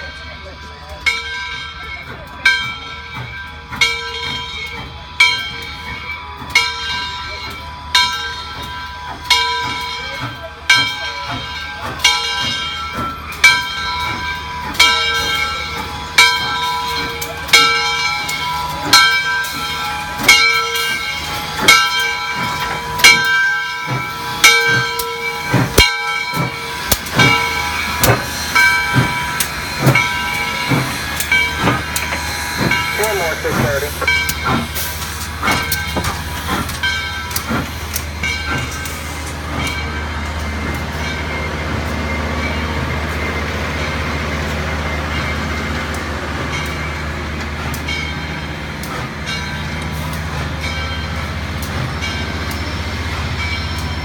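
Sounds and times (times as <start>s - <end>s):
locomotive bell ringing: 0.0s - 54.0s
steam locomotive rolling: 0.0s - 54.0s
steam hissing: 3.5s - 54.0s.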